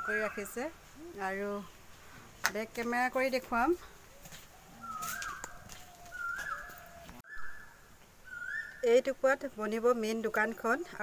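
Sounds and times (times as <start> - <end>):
bird whistled call: 4.8 - 8.9.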